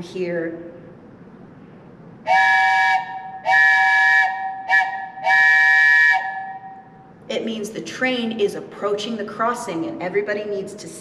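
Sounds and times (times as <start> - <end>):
wooden train whistle blasts: 2.3 - 6.8.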